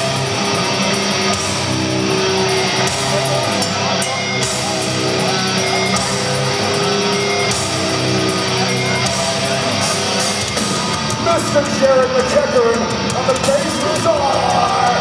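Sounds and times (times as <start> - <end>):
heavy metal band playing: 0.0 - 15.0.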